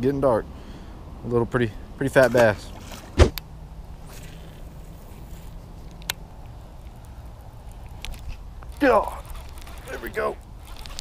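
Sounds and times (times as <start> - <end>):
outdoor background noise: 0.0 - 11.0
short thump: 3.0 - 3.4
sharp clicks: 5.8 - 8.8.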